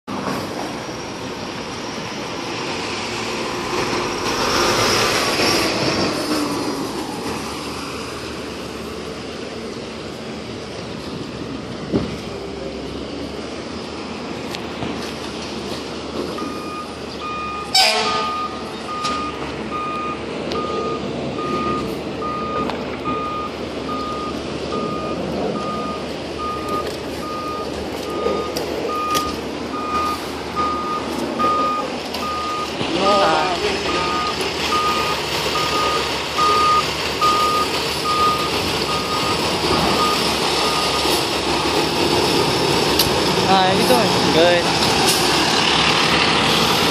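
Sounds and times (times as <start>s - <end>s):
diesel engine running: 0.1s - 46.9s
back-up alarm beeping: 16.4s - 41.2s.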